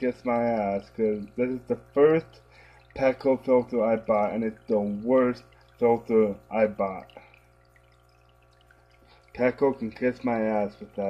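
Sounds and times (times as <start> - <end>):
low steady hum: 0.0 - 11.0
water trickling into aquarium: 0.0 - 11.0.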